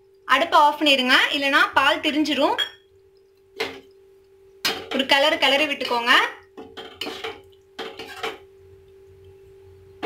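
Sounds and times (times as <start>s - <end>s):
metal ladle scraping a pot: 7.0s - 8.4s.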